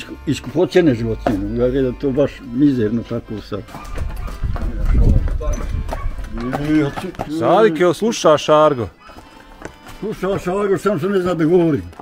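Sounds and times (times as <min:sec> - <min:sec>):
hooves clopping on concrete: 0:00.0 - 0:12.0.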